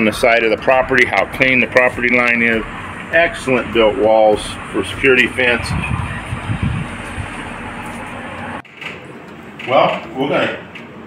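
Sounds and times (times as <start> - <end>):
wind buffeting microphone: 1.3 - 8.6.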